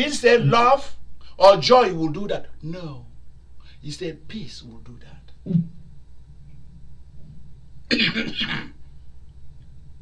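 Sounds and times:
man coughing: 7.9 - 8.8.

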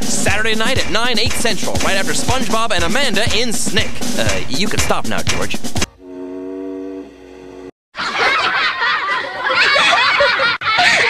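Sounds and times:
people snickering laughter: 8.0 - 11.0.

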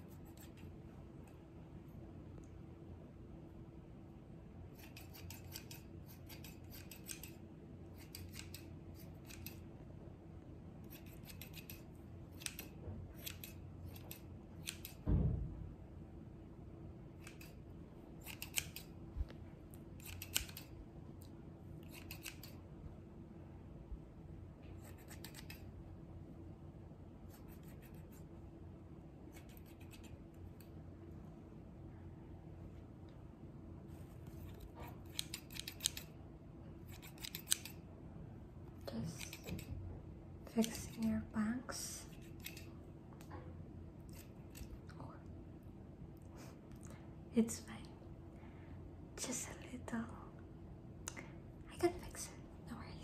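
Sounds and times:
scissors snipping hair: 0.0 - 0.8, 4.7 - 9.7, 10.8 - 15.0, 17.2 - 17.6, 18.2 - 19.3, 20.0 - 22.6, 24.8 - 25.7, 27.3 - 28.3, 29.3 - 30.7, 34.3 - 36.2, 36.8 - 37.8, 38.8 - 39.8, 40.5 - 41.3, 41.9 - 42.7, 44.0 - 45.0
steady low hum: 0.0 - 53.0
dull thump: 15.0 - 15.7.

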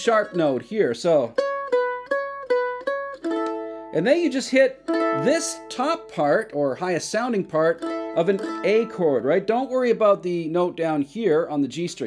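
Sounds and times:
mandolin chord ringing: 0.0 - 10.2
mandolin picking notes: 0.0 - 12.0.

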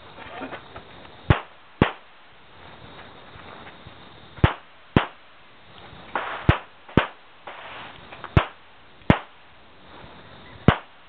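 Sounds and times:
pistol shots: 1.3 - 2.3, 4.4 - 5.4, 6.2 - 7.7, 8.4 - 9.5, 10.7 - 11.0.

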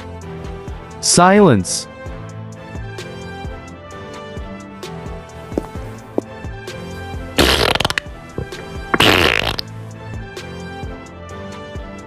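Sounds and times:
background music: 0.0 - 12.0
comic fart sound effects: 7.4 - 9.7.

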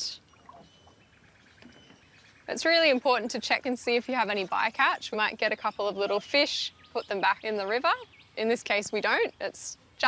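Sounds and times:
handling in water: 0.0 - 6.3
faint water drips: 0.0 - 7.2.

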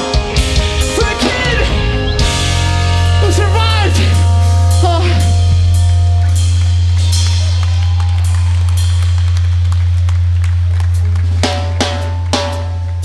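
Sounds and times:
loud low drone: 1.4 - 13.0.

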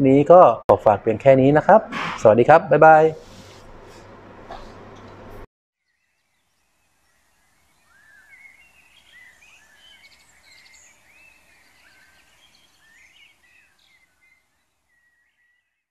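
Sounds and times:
birds chirping: 6.4 - 15.6.

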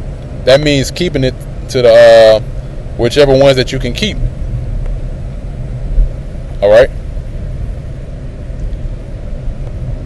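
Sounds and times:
low background rumble: 0.0 - 10.0
man speaking: 0.4 - 2.4, 3.0 - 4.3, 6.6 - 6.9.

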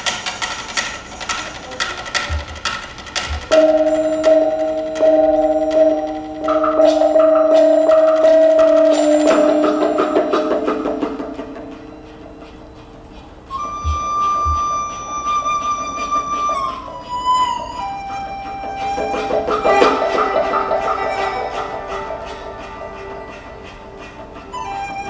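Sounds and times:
hammered dulcimer notes: 0.4 - 25.0
high bowed erhu note: 3.5 - 25.0
sustained tones: 3.5 - 25.0.

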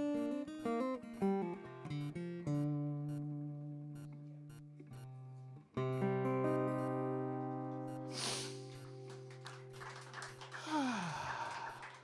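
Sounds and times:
acoustic guitar chord ringing: 5.1 - 9.2
breathy voice exclamation: 10.6 - 11.8.

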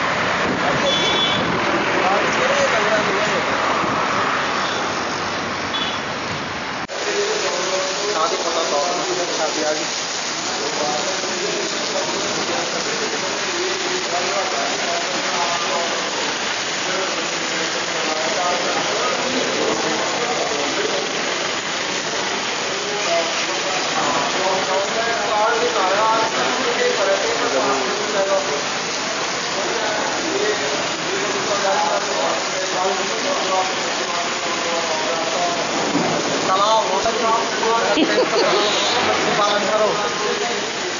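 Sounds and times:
heavy rain on road: 0.0 - 40.9
indistinct voices talking: 6.9 - 40.9.

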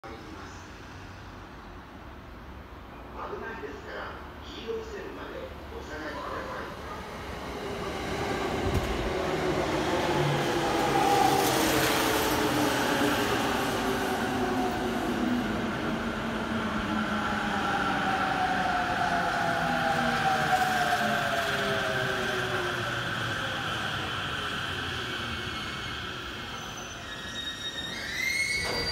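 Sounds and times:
train wheels rumbling on rails: 7.4 - 16.6.

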